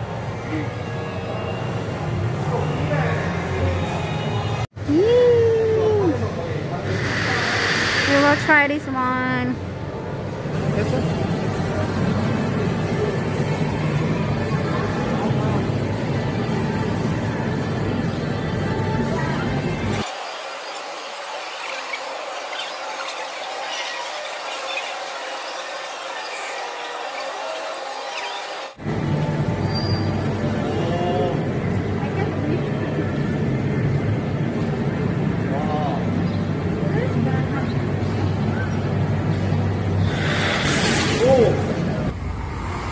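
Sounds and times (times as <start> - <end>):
background chatter: 0.0 - 20.0, 29.5 - 40.5.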